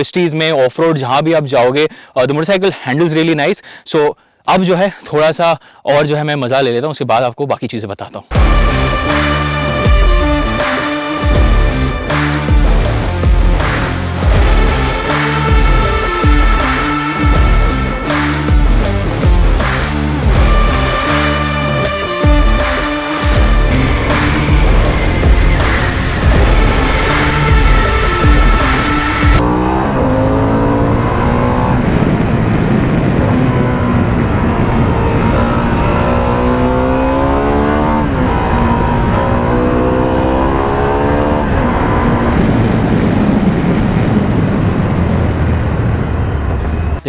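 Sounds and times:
background music with a beat: 8.3 - 29.4
motorcycle engine accelerating: 8.3 - 47.0.

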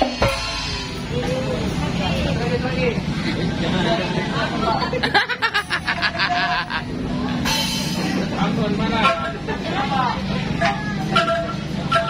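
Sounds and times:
traffic engine drone: 0.0 - 12.0
people talking: 0.7 - 12.0.

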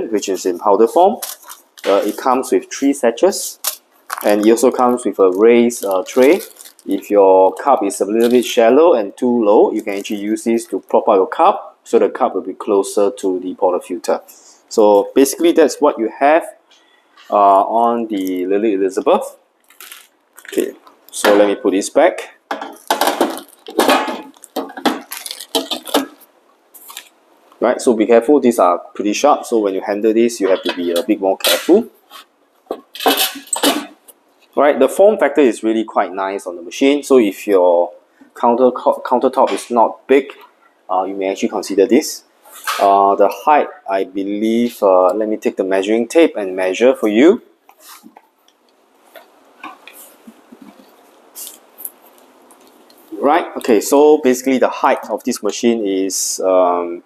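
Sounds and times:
clicks taps and rustles: 22.5 - 27.6, 30.5 - 34.6, 47.6 - 53.7
metal parts clattering and scraping: 32.9 - 34.0
short hissing scrapes: 47.8 - 48.1.

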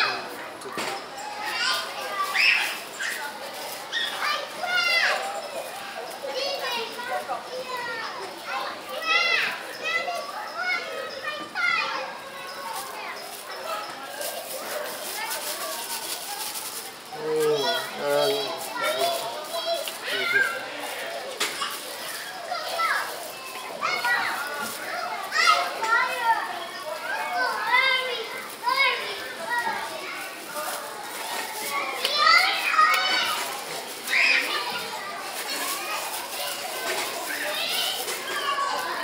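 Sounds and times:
children shouting: 0.0 - 39.0.

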